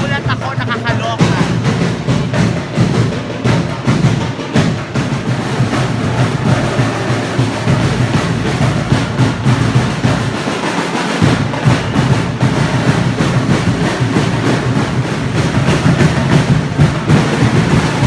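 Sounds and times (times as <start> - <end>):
loud fast drumming: 0.0 - 18.0.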